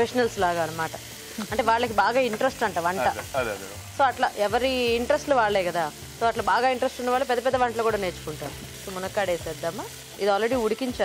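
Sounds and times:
woman talking: 0.0s - 3.2s, 4.0s - 11.0s
food sizzling in a pan: 0.0s - 11.0s.

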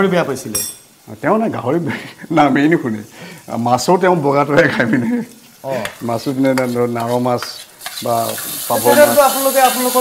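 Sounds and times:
people talking: 0.0s - 10.0s
metal cookware clinking: 0.5s - 0.9s.

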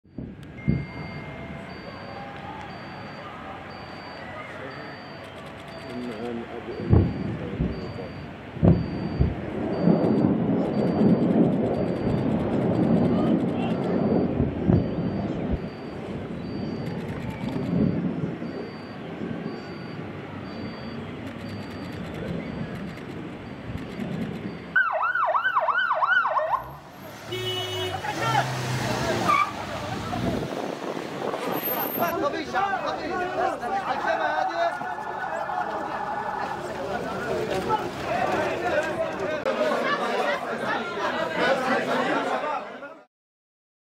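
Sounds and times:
vehicle noise: 0.0s - 42.7s
ambulance siren yelping: 0.9s - 9.4s, 24.7s - 26.8s
rocket motors rumbling: 4.9s - 24.8s
horn-like tone: 27.2s - 28.5s
people shouting: 32.1s - 42.0s.

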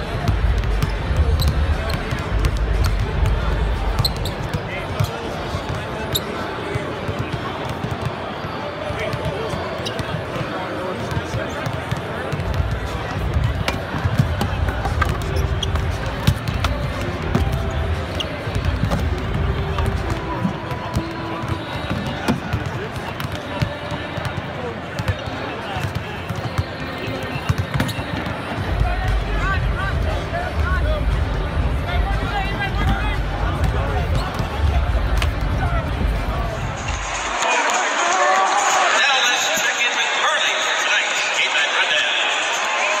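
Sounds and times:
babble of voices: 0.0s - 43.0s
people talking: 0.0s - 43.0s
basketballs bouncing on hardwood: 11.0s - 24.4s.

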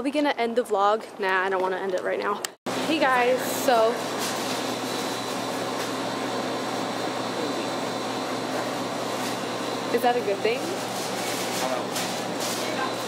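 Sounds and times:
ventilation fans hissing: 2.7s - 13.0s.

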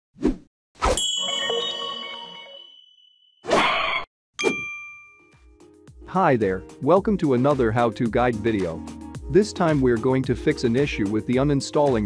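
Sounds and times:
bright bell-like ding: 1.0s - 3.4s, 4.4s - 5.4s.

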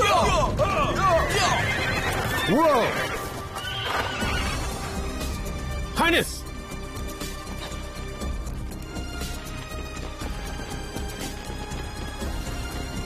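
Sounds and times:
background music: 0.0s - 13.0s
rumble of galloping horses: 0.2s - 5.0s
horses neighing: 0.6s - 5.2s.

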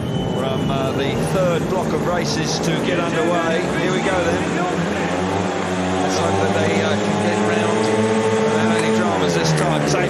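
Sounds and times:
motorbike engines revving: 0.0s - 10.0s.

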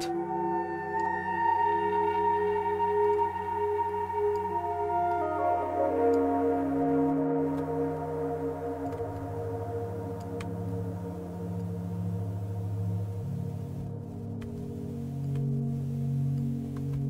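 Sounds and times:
sustained low synthesizer tones: 0.0s - 17.0s.

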